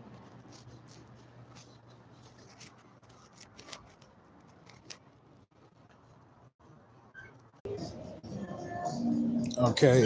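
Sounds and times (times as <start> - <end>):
phone rustling and scraping: 0.0 - 5.2.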